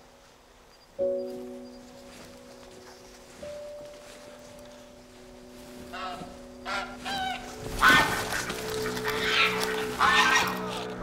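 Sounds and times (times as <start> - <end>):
background music with held notes: 0.0 - 11.0
geese honking: 5.7 - 11.0.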